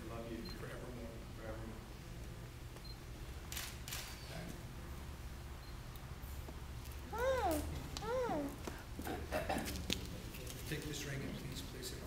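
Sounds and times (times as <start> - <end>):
camera shutter clicking: 3.5 - 4.2.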